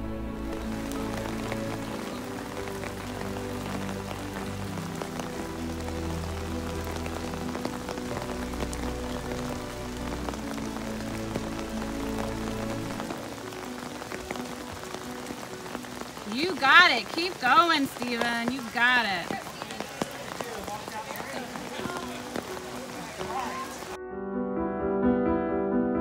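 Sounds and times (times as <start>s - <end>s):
steady rain falling: 0.0s - 24.0s
background music: 0.0s - 26.0s.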